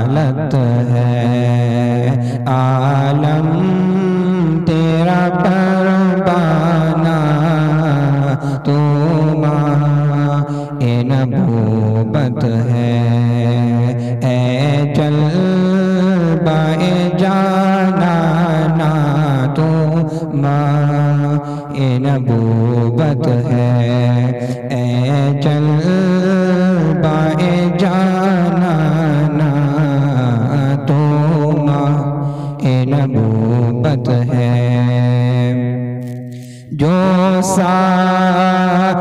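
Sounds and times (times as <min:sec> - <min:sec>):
man singing long held notes: 0:00.0 - 0:39.0.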